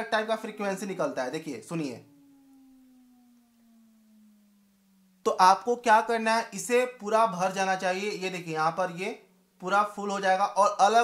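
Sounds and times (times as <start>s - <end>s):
low hum falling in pitch: 1.0s - 6.4s.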